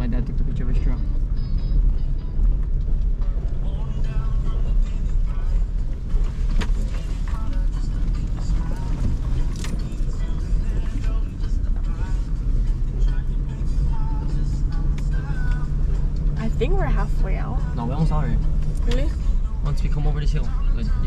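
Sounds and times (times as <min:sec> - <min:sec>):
truck engine and tyres rumbling: 0:00.0 - 0:21.0.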